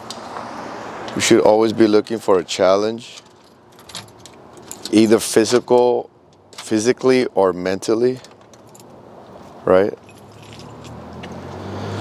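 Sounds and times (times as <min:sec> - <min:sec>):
vehicle engine hum approaching: 0:00.0 - 0:02.4, 0:08.9 - 0:12.0
keys jingling: 0:03.1 - 0:05.6, 0:08.2 - 0:11.0.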